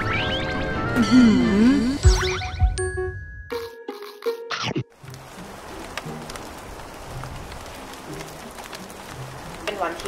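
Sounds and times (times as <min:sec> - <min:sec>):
soft background music: 0:00.0 - 0:10.0
heavy rain hissing: 0:05.0 - 0:10.0.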